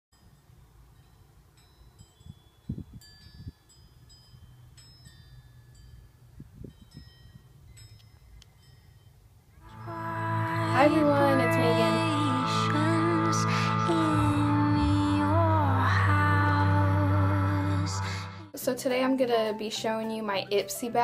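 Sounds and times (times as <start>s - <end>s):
faint wind chimes tinkling: 0.1s - 9.7s
low outdoor rumble: 9.6s - 18.5s
music: 9.6s - 21.0s.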